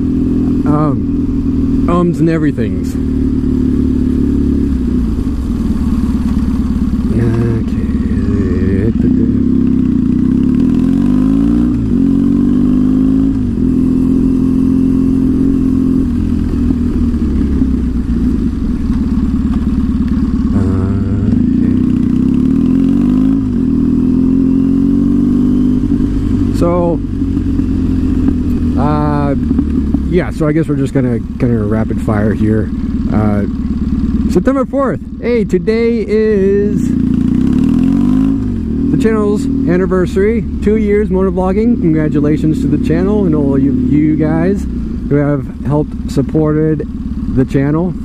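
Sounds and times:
motorcycle engine running: 0.0 - 48.0.

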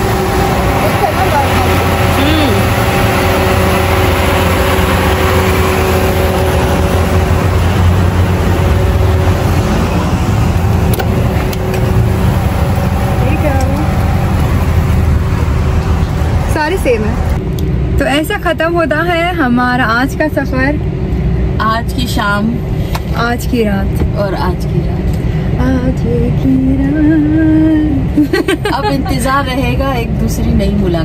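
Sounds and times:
truck engine idling: 0.0 - 17.4.

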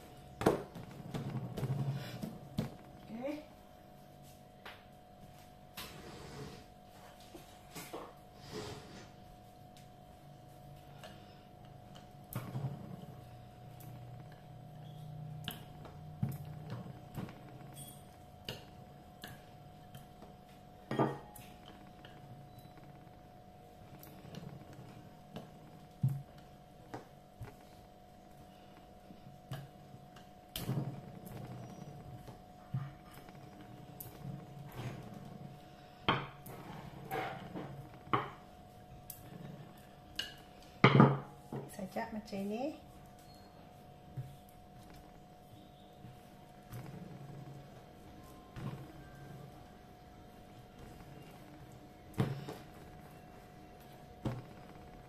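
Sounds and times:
rolling pin rolling dough: 0.0 - 55.0.

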